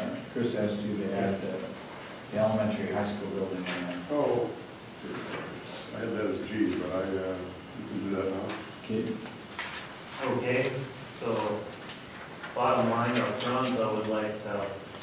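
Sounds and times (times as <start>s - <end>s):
people talking: 0.0s - 9.3s, 10.2s - 11.7s, 12.6s - 14.8s.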